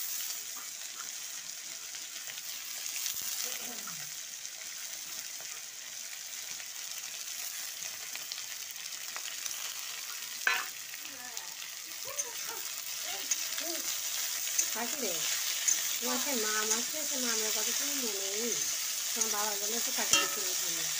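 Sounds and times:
potatoes frying in hot oil: 0.0s - 20.9s
spatula stirring: 12.4s - 20.9s
spatula clacking against pan: 20.0s - 20.7s.

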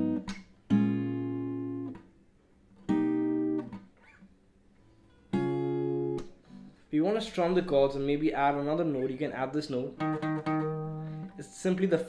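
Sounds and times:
acoustic guitar chords plucked: 0.0s - 2.1s, 2.9s - 3.8s, 5.3s - 6.4s, 9.8s - 12.0s.

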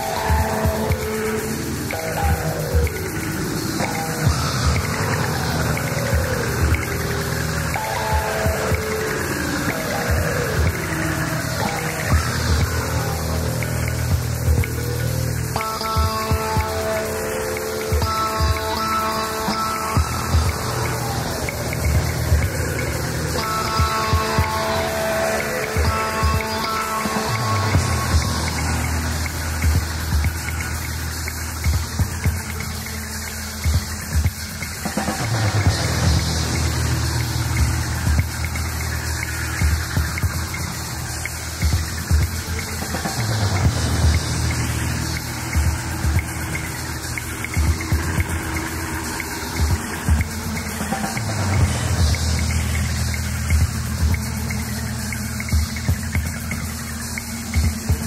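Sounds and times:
repeating bass line: 0.0s - 58.0s.

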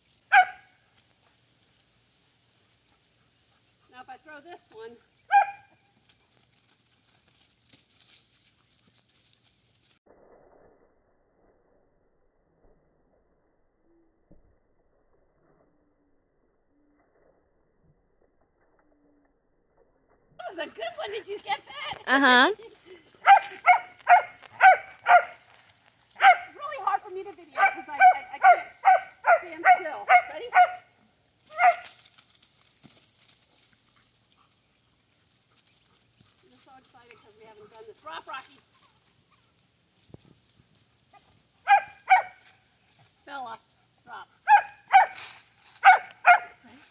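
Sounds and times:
rustling in dry leaves: 0.0s - 10.0s, 20.5s - 43.5s, 44.4s - 46.9s
dog barking: 0.3s - 0.7s, 5.3s - 5.8s, 23.2s - 25.4s, 26.2s - 26.6s, 27.6s - 30.9s, 31.5s - 31.9s, 41.6s - 42.4s, 44.4s - 45.2s, 45.8s - 46.6s.

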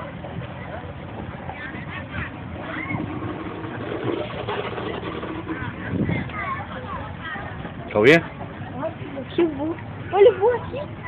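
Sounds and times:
distant voices of people and children: 0.0s - 11.0s
steady low rumble: 0.0s - 11.0s.

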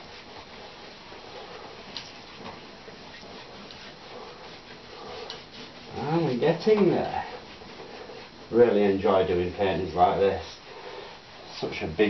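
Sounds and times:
low steady hiss: 0.0s - 12.0s
paintbrush brushing on canvas: 0.0s - 12.0s.

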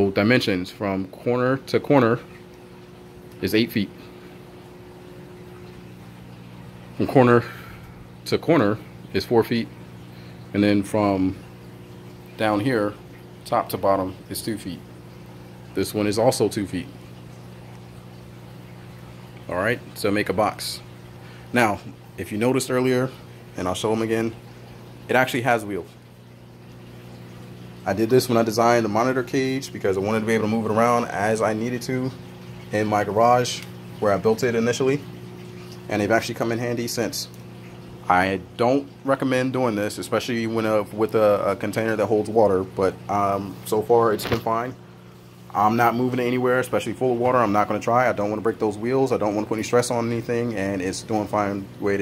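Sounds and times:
water pump humming: 0.0s - 52.0s.

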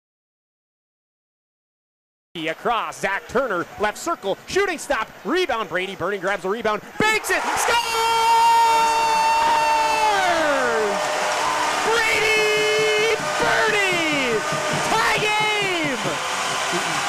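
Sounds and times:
crowd noise: 2.4s - 17.0s.

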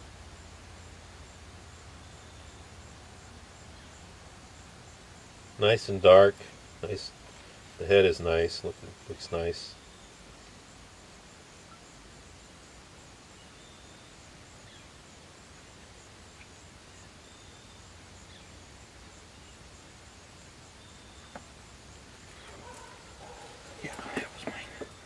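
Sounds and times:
outdoor background hiss: 0.0s - 25.0s.

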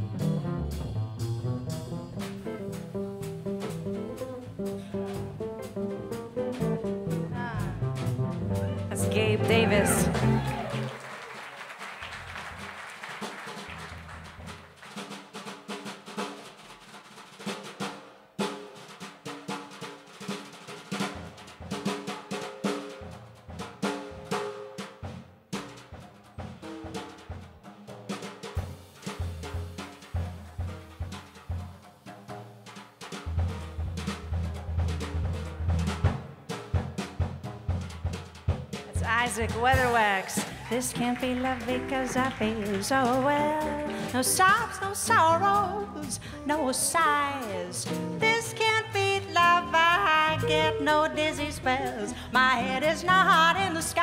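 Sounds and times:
upright bass: 0.0s - 11.0s, 33.3s - 36.1s, 39.0s - 46.8s, 47.8s - 54.0s
live jazz combo: 0.0s - 54.0s
snare and cymbal hits: 13.2s - 45.2s.

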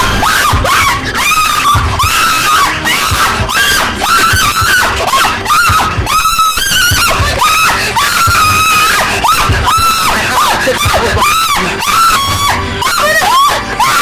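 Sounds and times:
background music with low thuds: 0.0s - 14.0s
woman screaming and crying out: 0.0s - 14.0s.

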